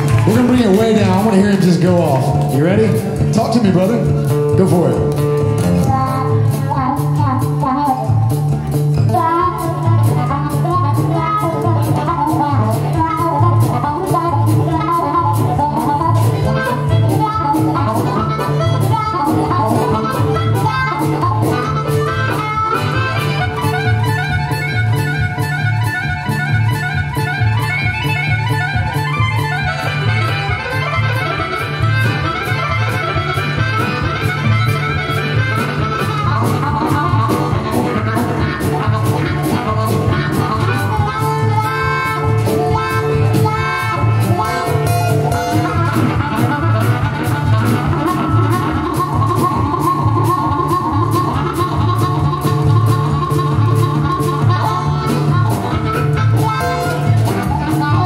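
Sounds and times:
acoustic guitar: 0.0 - 58.0
harmonica solo: 0.0 - 58.0
upright bass: 0.0 - 58.0.

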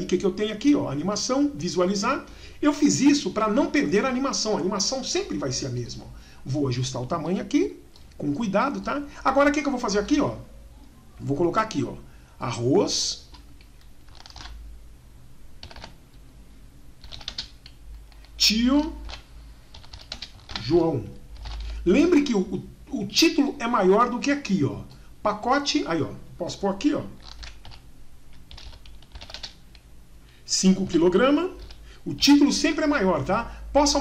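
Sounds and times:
typing on computer keyboard: 13.3 - 14.6, 15.6 - 16.0, 17.0 - 18.4, 19.0 - 21.8, 27.2 - 27.8, 28.4 - 29.8, 31.6 - 31.8.

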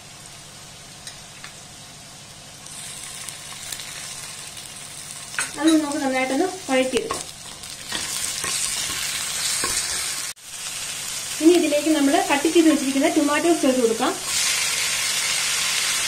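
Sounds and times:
food sizzling in pan: 0.0 - 16.0.

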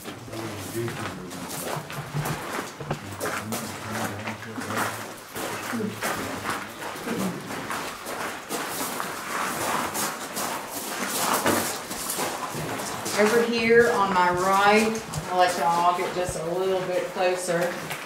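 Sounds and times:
faint voices: 0.0 - 7.6
footsteps and shuffling: 0.0 - 18.0.

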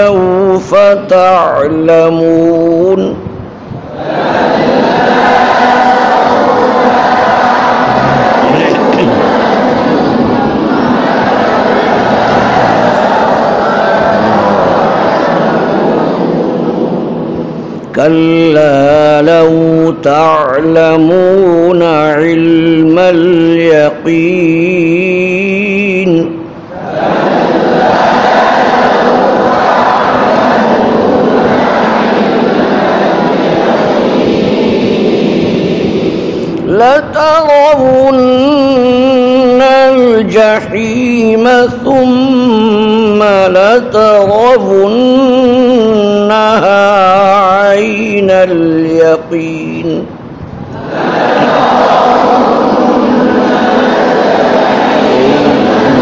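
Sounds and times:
group of voices reciting in unison: 0.0 - 56.0.

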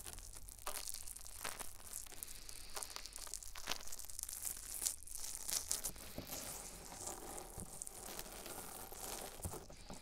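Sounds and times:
brush scratching on microphone: 6.0 - 10.0.

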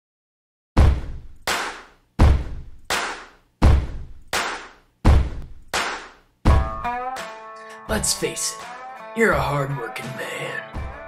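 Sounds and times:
heavy deep drum-like hits: 0.8 - 1.4, 2.2 - 2.8, 3.6 - 4.2, 5.0 - 5.6, 6.5 - 6.8.

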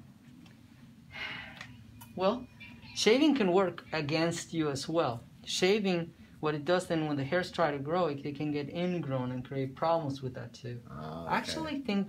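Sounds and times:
soft breath: 1.1 - 1.8.

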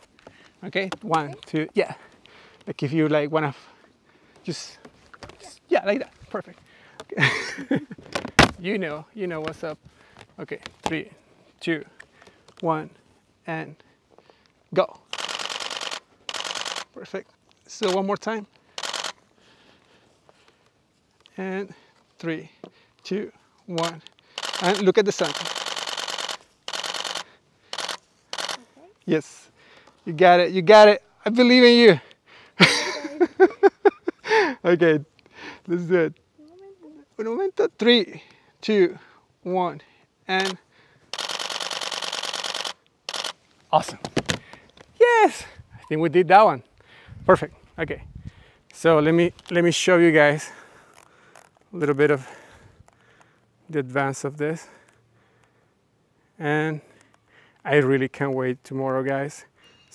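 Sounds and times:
camera shutter burst clicks: 15.1 - 17.0, 17.8 - 18.1, 18.7 - 19.2, 23.8 - 28.7, 40.4 - 43.4.

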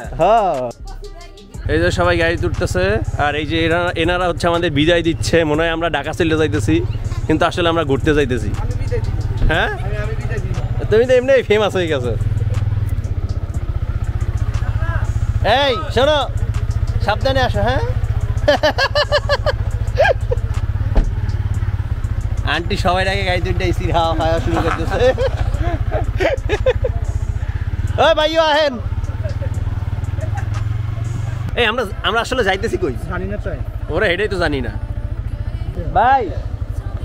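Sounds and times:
vehicle engine idling: 0.0 - 37.0.

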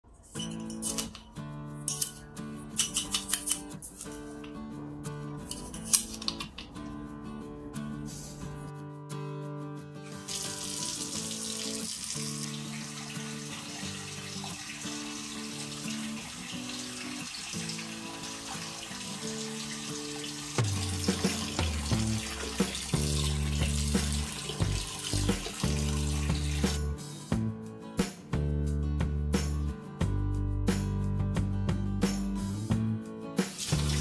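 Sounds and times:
background music: 0.1 - 34.0
tap water pouring into sink: 10.2 - 26.8, 33.5 - 34.0.

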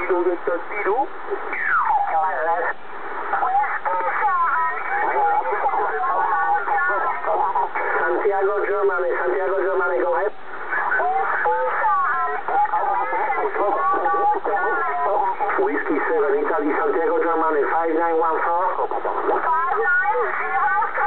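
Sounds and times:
radio speech through speaker: 0.0 - 21.0.

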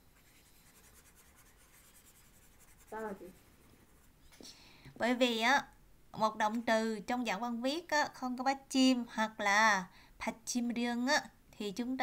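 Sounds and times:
handwriting scratching: 0.0 - 4.1.

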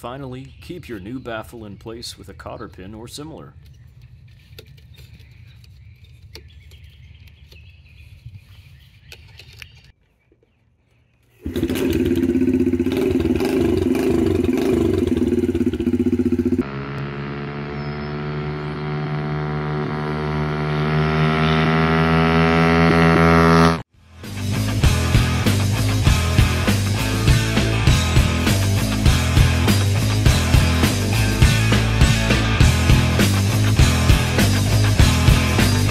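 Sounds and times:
motorcycle engine revving: 11.4 - 35.9
rock music: 24.0 - 35.9.

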